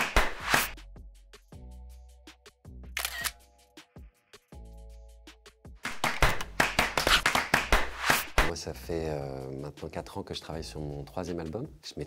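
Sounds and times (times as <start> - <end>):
background music with clicking beat: 0.0 - 12.0
camera shutter snapping: 3.0 - 3.4.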